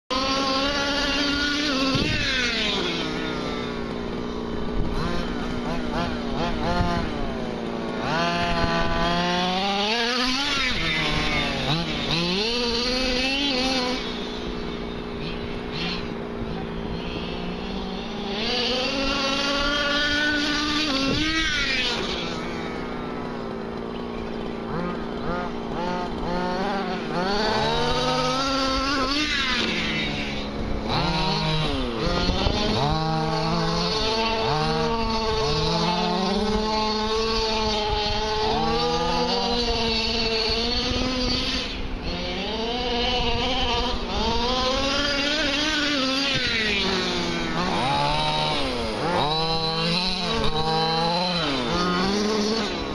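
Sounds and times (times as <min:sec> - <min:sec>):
small two-stroke engine revving: 0:00.0 - 0:52.9.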